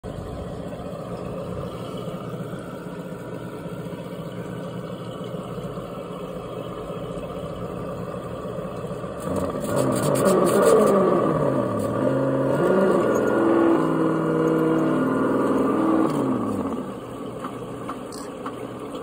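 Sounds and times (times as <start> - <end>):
simulated engine idle from speaker: 0.0 - 10.3.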